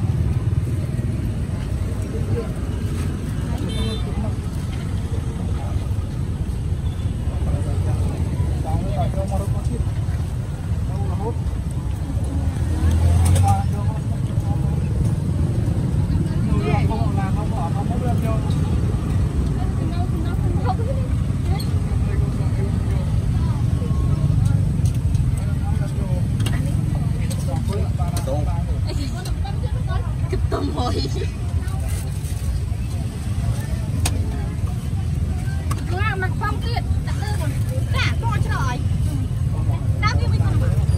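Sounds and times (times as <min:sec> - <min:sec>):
low traffic rumble: 0:00.0 - 0:40.9
people chatting: 0:07.2 - 0:40.9.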